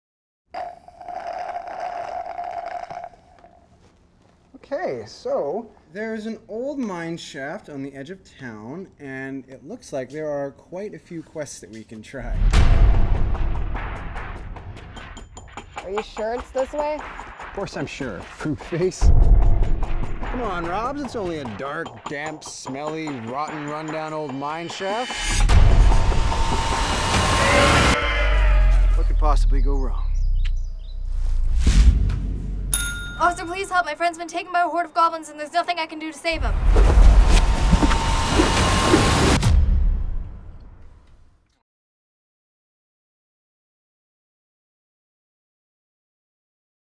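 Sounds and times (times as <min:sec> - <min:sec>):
deep low rumble: 0:19.0 - 0:21.3
held tone: 0:32.7 - 0:33.8.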